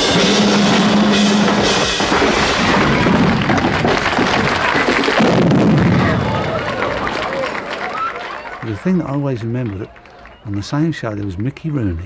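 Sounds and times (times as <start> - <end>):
pounding drum kit with cymbals: 0.0 - 3.9
rock band music: 0.0 - 3.9.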